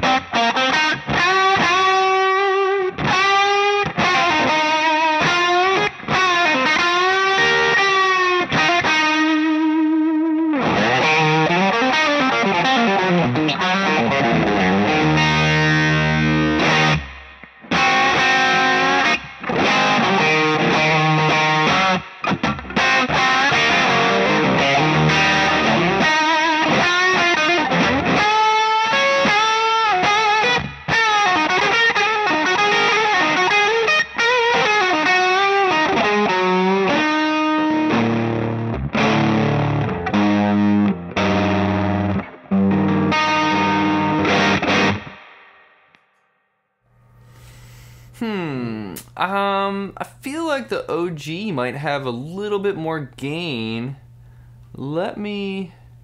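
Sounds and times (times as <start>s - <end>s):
distorted electric guitar riffs: 0.0s - 45.6s.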